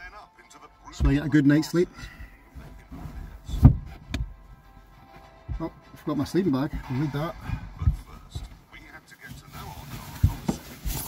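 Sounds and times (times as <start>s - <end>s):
bed boards and cushions shifted: 0.9s - 11.0s
rustling handling noise: 0.9s - 11.0s
knocks on wood: 3.6s - 4.4s.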